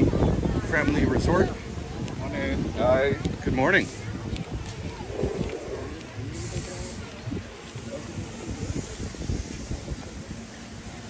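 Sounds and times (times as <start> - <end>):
faint voices of people: 0.0 - 11.0
wind buffeting microphone: 0.0 - 11.0.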